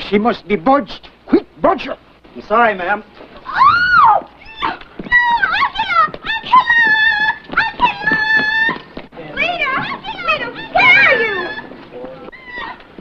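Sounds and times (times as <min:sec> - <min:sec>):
woman shrieking and squealing: 0:03.4 - 0:08.9, 0:10.6 - 0:12.8.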